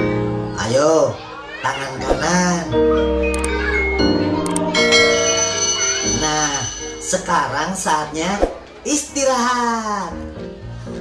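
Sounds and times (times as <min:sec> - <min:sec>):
background music: 0:00.0 - 0:11.0
school bell ringing: 0:03.3 - 0:08.2.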